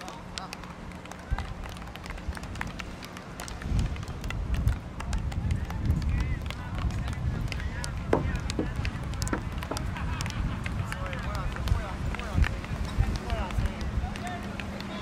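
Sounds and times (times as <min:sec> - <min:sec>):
low uneven rumble: 0:00.2 - 0:14.6
voices calling: 0:06.0 - 0:15.0
sticks striking ball: 0:08.1 - 0:09.9.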